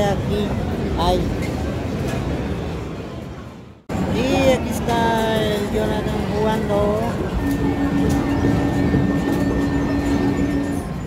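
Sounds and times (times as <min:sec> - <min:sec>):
general rumble: 0:00.0 - 0:11.0
steady low electronic tone: 0:06.2 - 0:11.0
game machine electronic sounds: 0:07.0 - 0:11.0.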